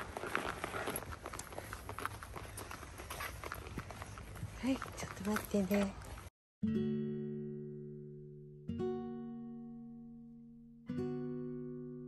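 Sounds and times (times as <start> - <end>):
footsteps of person and dog on dirt: 0.0 - 6.3.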